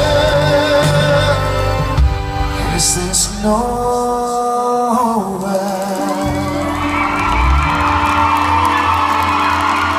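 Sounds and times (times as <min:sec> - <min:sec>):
audience cheering and whooping: 0:05.9 - 0:09.9.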